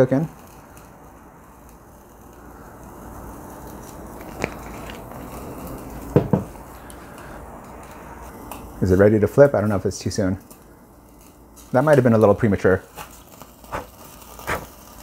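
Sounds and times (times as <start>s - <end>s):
meat sizzling on charcoal grill: 0.0s - 15.0s.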